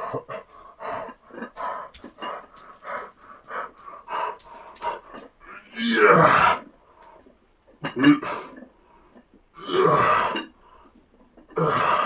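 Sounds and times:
man panting: 0.0 - 5.6.

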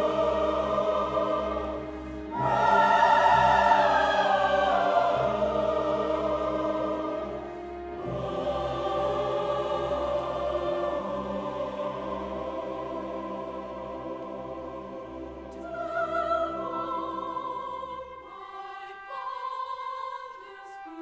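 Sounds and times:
choir singing with orchestra: 0.0 - 21.0.

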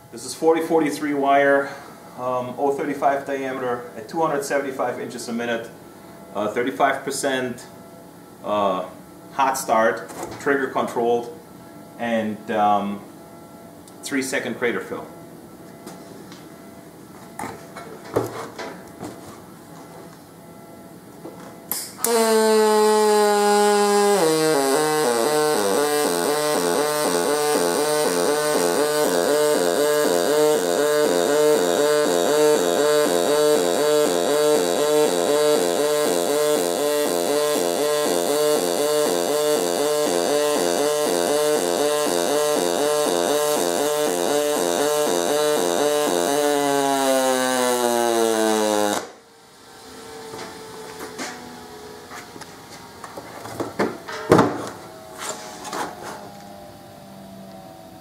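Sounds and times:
welding arc buzzing: 20.1 - 53.2.

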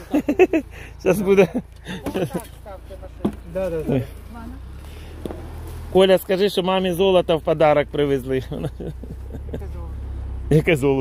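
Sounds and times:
people talking: 0.0 - 4.6, 5.9 - 11.0.

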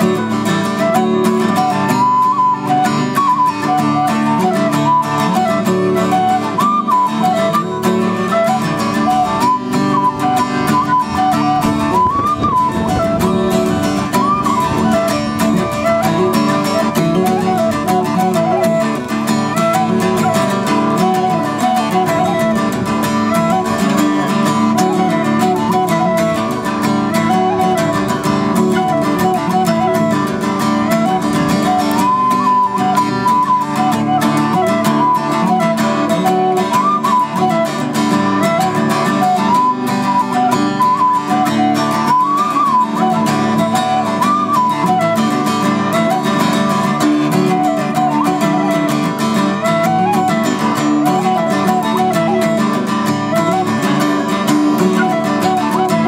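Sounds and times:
strummed acoustic guitar: 0.0 - 56.0
tin whistle folk melody: 0.0 - 56.0.

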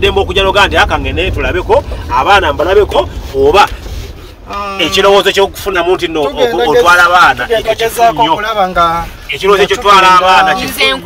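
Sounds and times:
car cabin rumble: 0.0 - 11.0
man speaking: 4.5 - 11.0.

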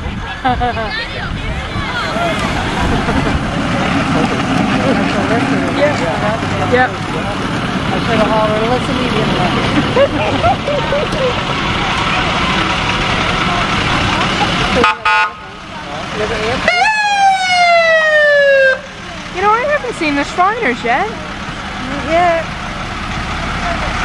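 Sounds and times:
fire truck passing: 0.0 - 24.0
street and crowd noise: 0.0 - 24.0
fire truck horn blast: 14.8 - 15.5
siren wailing: 16.7 - 18.9.

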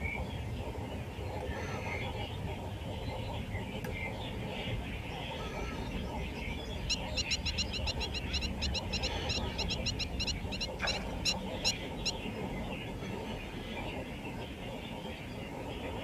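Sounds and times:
steady low rumble: 0.0 - 16.0
bird calling in nasal notes: 6.8 - 12.3.

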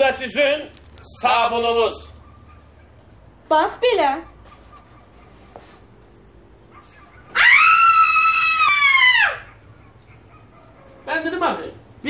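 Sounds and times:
woman screaming shrilly: 7.3 - 9.5.

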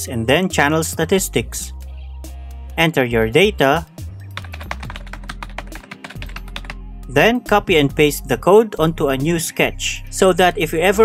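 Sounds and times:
background music: 0.0 - 11.0
typing on computer keyboard: 4.3 - 6.8.

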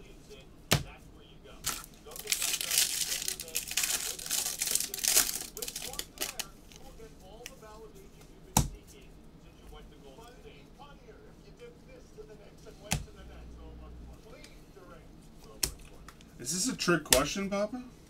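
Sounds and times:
foil wrapper tearing and crinkling: 1.6 - 6.5.

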